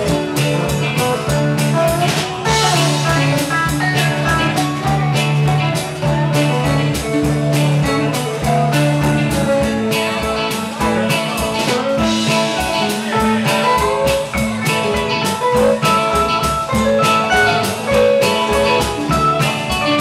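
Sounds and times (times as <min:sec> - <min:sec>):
bass guitar: 0:00.0 - 0:20.0
drum kit beat: 0:00.0 - 0:20.0
electric guitar: 0:00.0 - 0:20.0.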